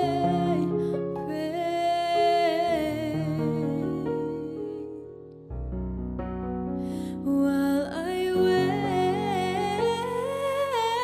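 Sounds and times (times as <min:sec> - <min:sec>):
woman singing wordless melody: 0:00.0 - 0:05.3, 0:07.0 - 0:11.0.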